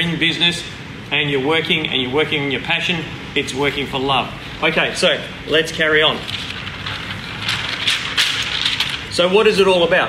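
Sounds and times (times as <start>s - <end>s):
paper rustling and crackling: 5.9s - 9.4s.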